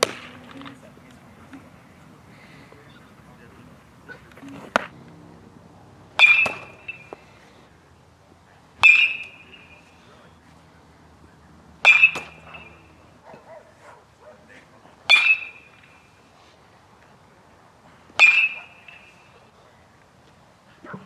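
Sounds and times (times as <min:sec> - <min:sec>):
metal bat pinging balls: 0:06.2 - 0:07.3, 0:08.8 - 0:09.8, 0:11.8 - 0:13.0, 0:15.1 - 0:15.9, 0:18.2 - 0:19.1.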